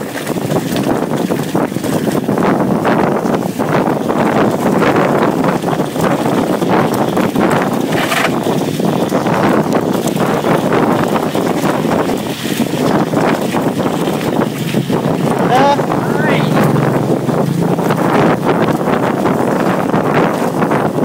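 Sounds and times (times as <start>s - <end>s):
bike rattles and clicks: 0.0s - 15.7s, 17.1s - 21.0s
bike tyre rumble: 0.0s - 21.0s
wind rushing on microphone: 0.0s - 21.0s.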